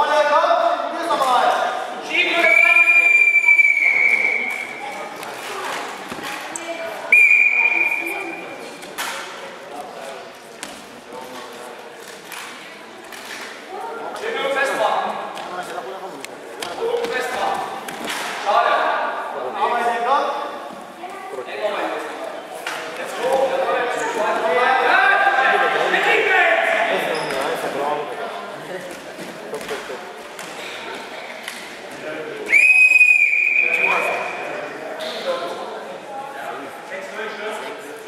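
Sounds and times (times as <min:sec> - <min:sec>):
referee's whistle long blast: 0:02.4 - 0:04.8, 0:07.2 - 0:08.3.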